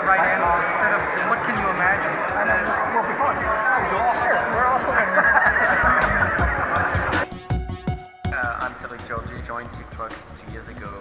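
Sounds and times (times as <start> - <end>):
men laughing heartily: 4.2 - 7.2.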